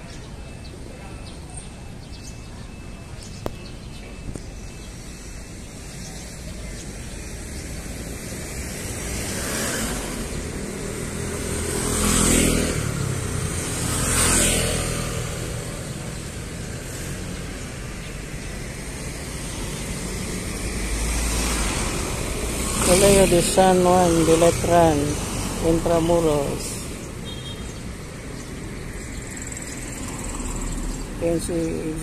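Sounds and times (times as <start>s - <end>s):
traffic hum: 0.0s - 32.0s
vehicles passing close by: 0.0s - 32.0s.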